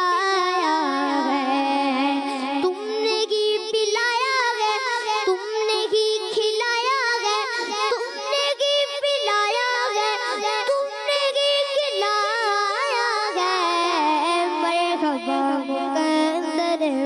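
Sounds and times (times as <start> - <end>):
boy singing devotional song: 0.0 - 17.0.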